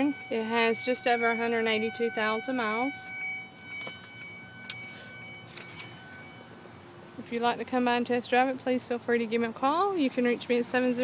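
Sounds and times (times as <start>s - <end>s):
faint steady tone: 0.0s - 11.0s.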